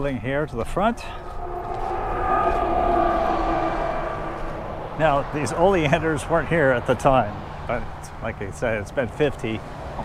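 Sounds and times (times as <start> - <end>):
steady whine: 0.8 - 6.4
vehicle driving past: 0.9 - 6.6.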